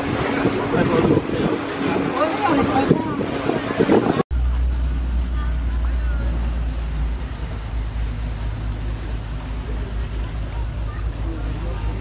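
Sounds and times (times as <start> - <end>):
outboard engine droning: 0.0 - 12.0
voices: 0.0 - 12.0
water noise: 0.0 - 12.0
wind: 0.0 - 12.0.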